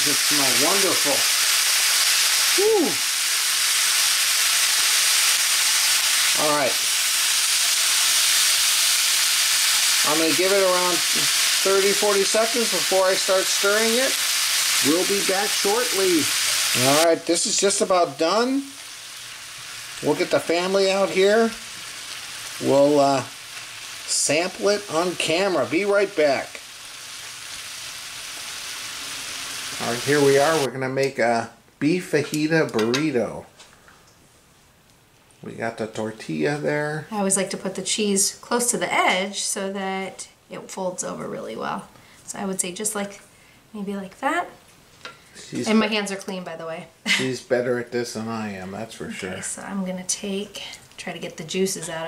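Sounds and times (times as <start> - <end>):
meat and vegetables sizzling in oil: 0.0 - 30.7
person speaking: 6.3 - 6.8, 45.4 - 46.1, 47.2 - 49.9.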